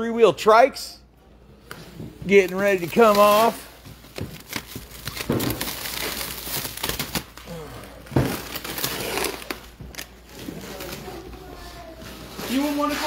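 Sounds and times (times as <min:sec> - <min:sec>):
plastic wrap crinkling and tearing: 0:02.3 - 0:13.0.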